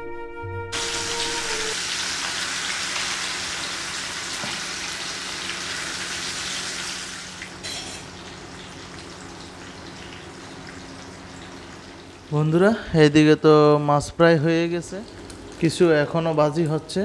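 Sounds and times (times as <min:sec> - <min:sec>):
fish sizzling in hot oil: 0:00.8 - 0:12.3.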